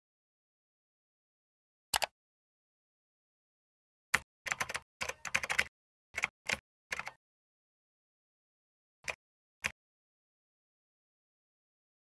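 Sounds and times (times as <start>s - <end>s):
computer keyboard typing: 4.2s - 7.2s.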